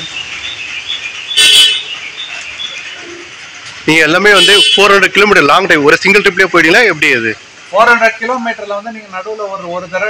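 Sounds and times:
birds chirping: 0.0s - 10.0s
outdoor background noise: 0.0s - 10.0s.

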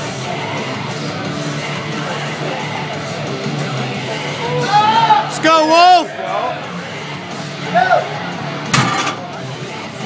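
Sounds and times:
murmur of voices: 0.0s - 10.0s
barbell plates clanging down: 8.7s - 9.3s.

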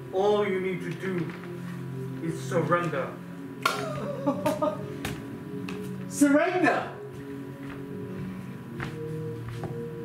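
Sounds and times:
background music: 0.0s - 10.0s
person crying out: 3.7s - 4.9s.

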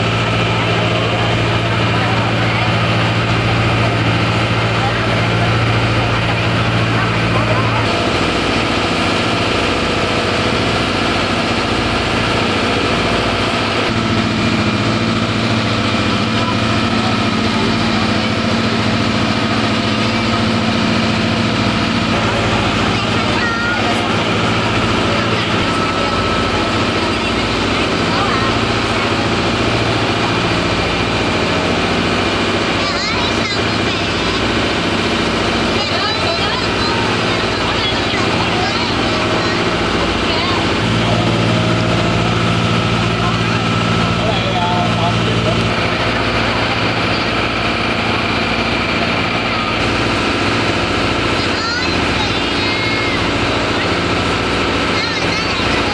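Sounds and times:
ferry engine drone: 0.0s - 55.9s.

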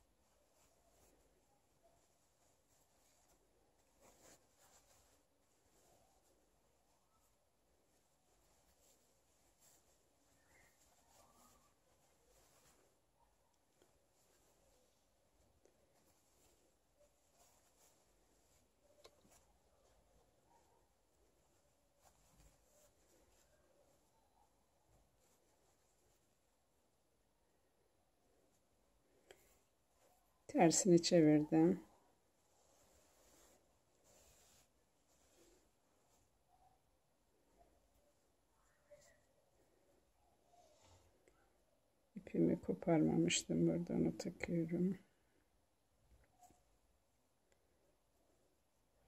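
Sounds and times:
fabric scarf rustling: 0.0s - 49.0s.

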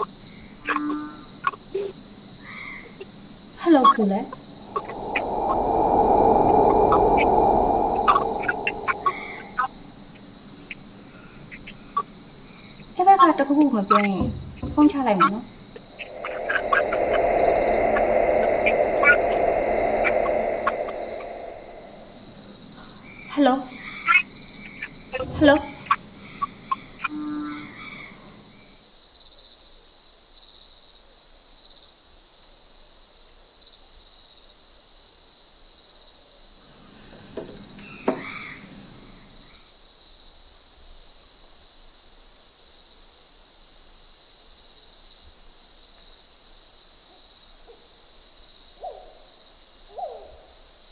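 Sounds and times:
crickets chirping: 0.0s - 29.1s
loud rushing noise: 4.6s - 9.9s, 15.9s - 22.7s.

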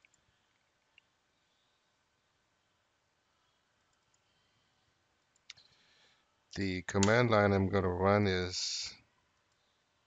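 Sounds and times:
faint room hiss: 0.0s - 10.0s
faint mouse clicks: 3.8s - 4.3s, 5.2s - 5.9s, 6.6s - 7.2s.

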